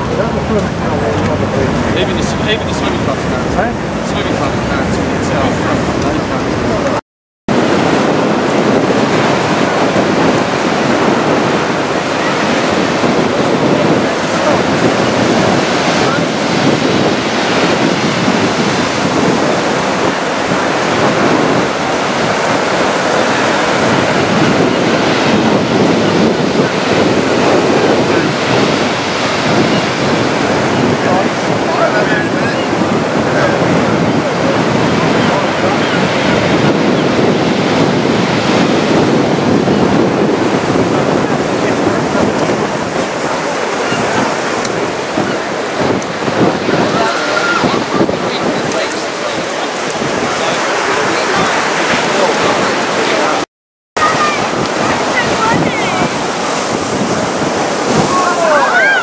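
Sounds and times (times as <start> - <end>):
surf breaking on shingle beach: 0.0 - 53.4, 54.0 - 59.0
wind buffeting microphone: 0.0 - 53.4, 54.0 - 59.0.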